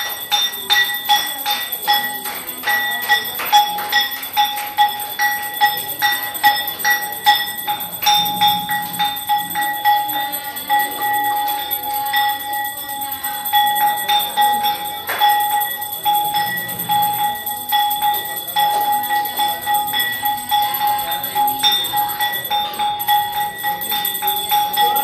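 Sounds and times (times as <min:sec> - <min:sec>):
hand bell ringing: 0:00.0 - 0:25.0.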